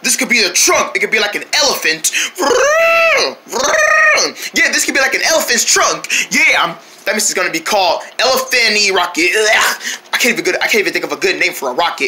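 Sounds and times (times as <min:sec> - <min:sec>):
person imitating elephant trumpeting: 0:02.4 - 0:04.4.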